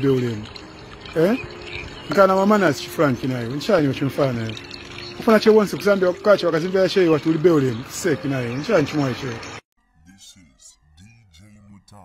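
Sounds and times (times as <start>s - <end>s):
man speaking: 10.0s - 12.0s.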